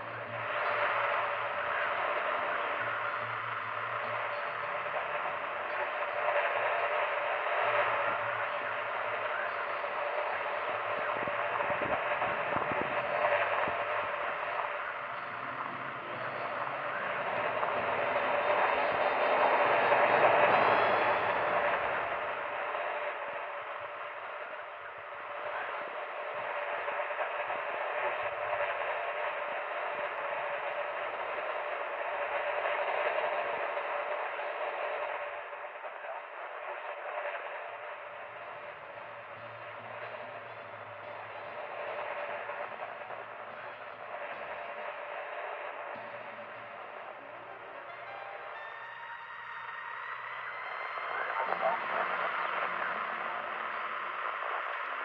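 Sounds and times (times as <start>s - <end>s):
tinny radio static hiss: 0.0s - 55.0s.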